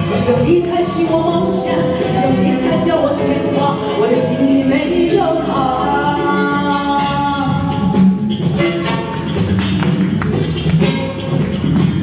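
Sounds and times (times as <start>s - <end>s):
backing music: 0.0s - 12.0s
woman singing into a microphone: 0.1s - 8.0s.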